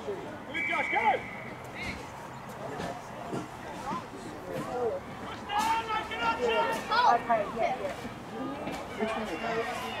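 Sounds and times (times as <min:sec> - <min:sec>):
whistle blast: 0:00.5 - 0:01.5
people shouting: 0:05.2 - 0:07.4, 0:09.2 - 0:10.0.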